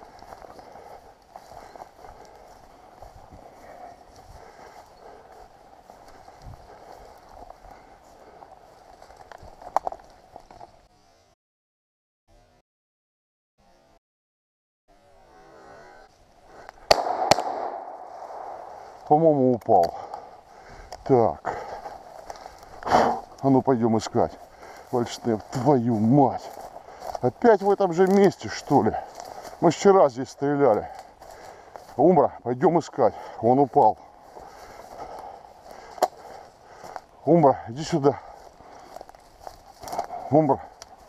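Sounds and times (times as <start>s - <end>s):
footsteps rustling through long grass: 0.0s - 11.2s, 16.1s - 41.0s
shotgun shots with echo: 16.9s - 18.7s.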